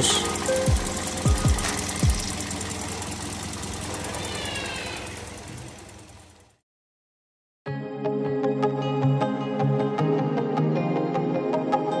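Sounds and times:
car engine idling with ticking: 0.0 - 6.6.

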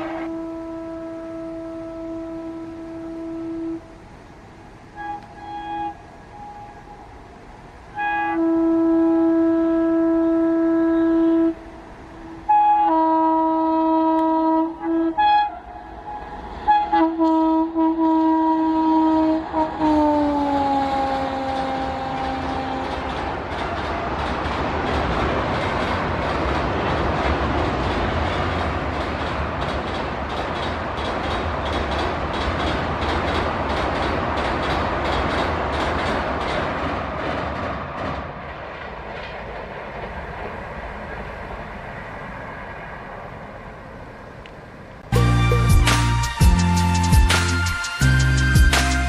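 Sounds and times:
locomotive horn: 0.0 - 4.3, 4.9 - 7.1, 7.8 - 23.4
train clattering over bridge: 0.0 - 49.0.

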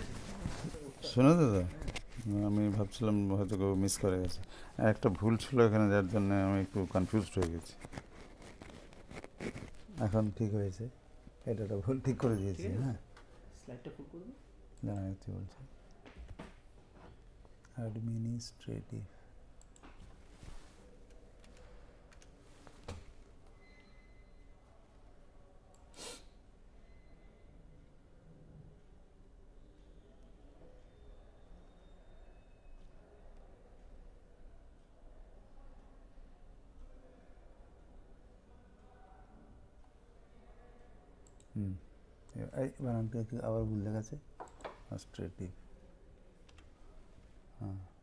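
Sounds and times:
faint clicks: 41.2 - 41.6.

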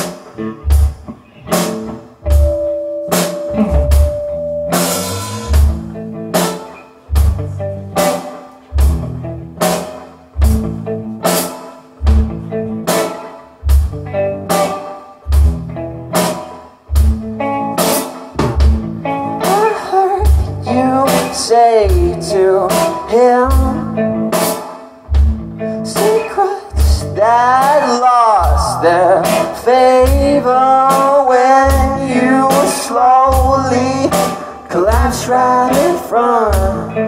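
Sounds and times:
drum kit beat: 0.0 - 37.0
electric guitar chords: 0.0 - 37.0.

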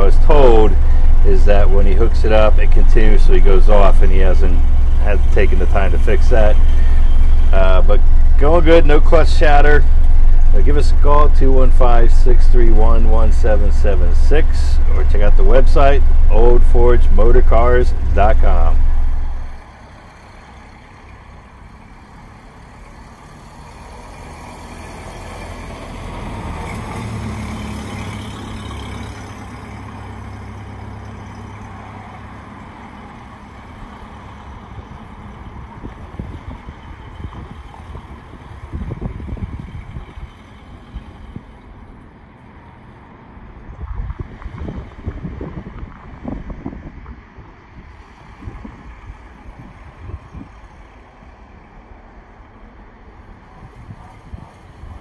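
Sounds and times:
truck engine driving off: 0.0 - 55.0
wind gusts on microphone: 34.8 - 41.5, 43.4 - 50.9, 53.3 - 55.0.

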